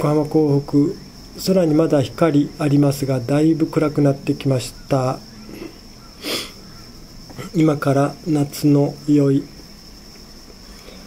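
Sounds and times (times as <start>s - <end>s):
man speaking: 0.0s - 5.2s, 7.4s - 9.5s
high-pitched insect trill: 0.0s - 11.0s
man breathing in through nose: 6.2s - 6.6s.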